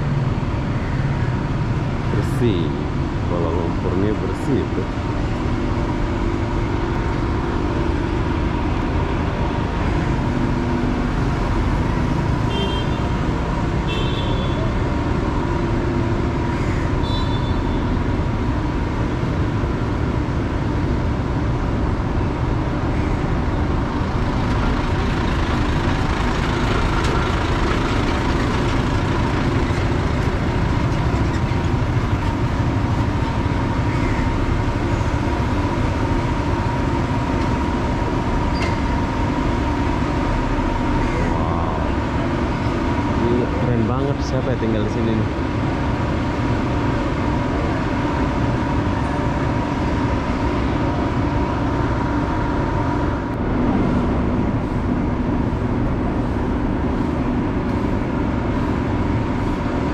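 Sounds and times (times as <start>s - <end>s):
constant hum: 0.0s - 59.9s
vehicle engines running: 0.0s - 59.9s.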